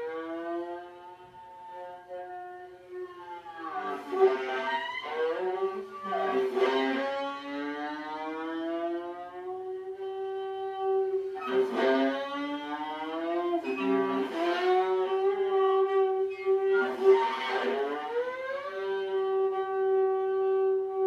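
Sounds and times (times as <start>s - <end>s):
viola bowed note: 0.0s - 21.0s.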